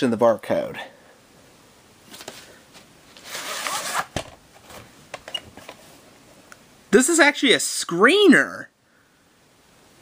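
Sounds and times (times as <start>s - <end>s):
tape case sliding rustle: 2.1s - 5.8s.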